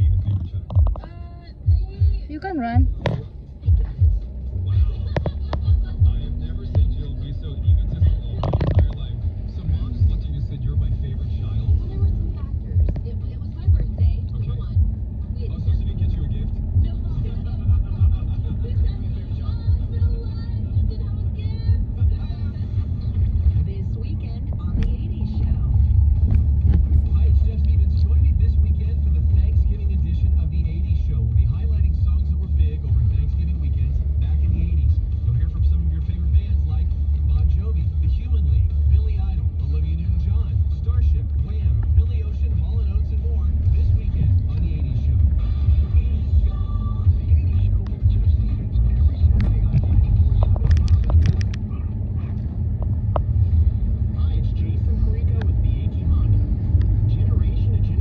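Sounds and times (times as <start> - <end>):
car driving rumble in cabin: 0.0 - 58.0.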